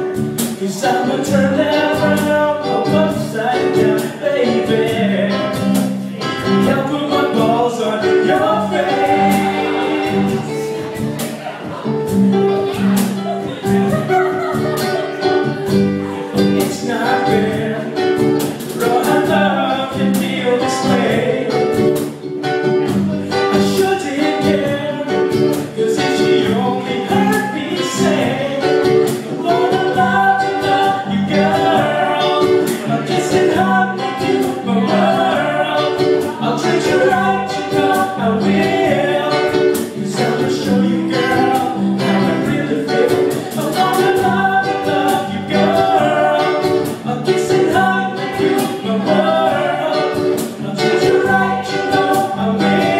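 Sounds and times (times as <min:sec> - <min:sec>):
bass line: 0:00.0 - 0:52.9
cajon beat: 0:00.0 - 0:52.9
person singing: 0:00.0 - 0:52.9
strummed ukulele: 0:00.0 - 0:52.9.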